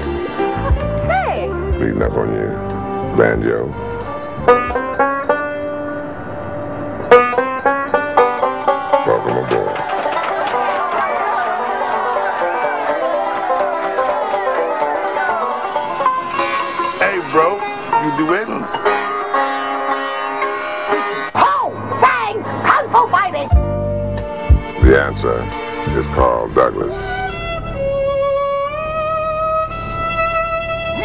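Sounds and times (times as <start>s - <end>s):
banjo plucked notes: 0.0s - 27.5s
plucked sitar-like string note: 15.1s - 21.4s.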